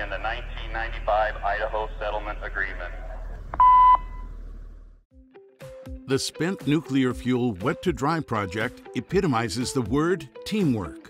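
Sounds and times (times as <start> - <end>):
short electronic beep: 3.6 - 4.3.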